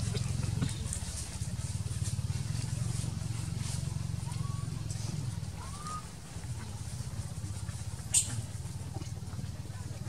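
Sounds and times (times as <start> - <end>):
dry leaves crackling: 0.0 - 8.7.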